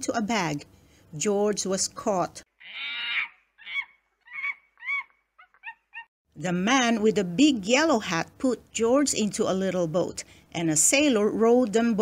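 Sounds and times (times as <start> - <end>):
monkey screeching and chattering: 2.6 - 6.1.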